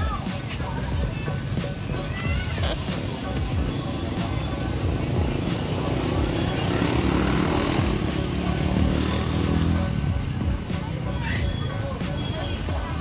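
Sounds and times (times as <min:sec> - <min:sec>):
vehicle engine passing: 0:04.7 - 0:10.2.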